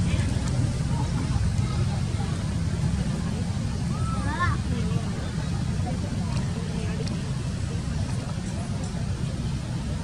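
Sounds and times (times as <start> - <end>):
steady low rumble: 0.0 - 10.0.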